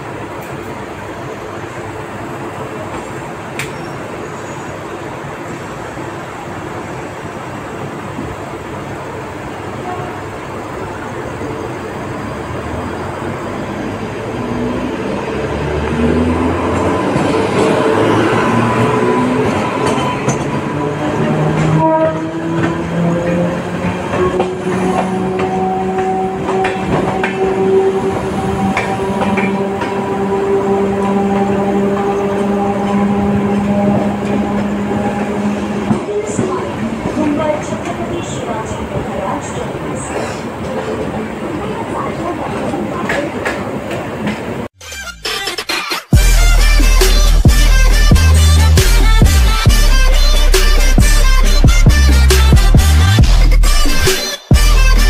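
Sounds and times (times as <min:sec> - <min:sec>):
locomotive whine: 0:00.0 - 0:43.0
train running noise: 0:00.0 - 0:44.7.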